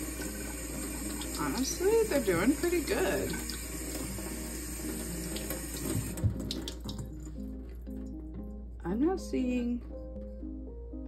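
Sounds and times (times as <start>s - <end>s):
tap water running over bottle: 0.0s - 8.1s
soft background music: 0.0s - 11.0s.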